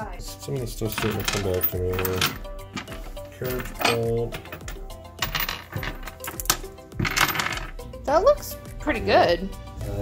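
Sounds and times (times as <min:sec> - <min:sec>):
metal bolts clinking on wood: 0:00.9 - 0:07.8.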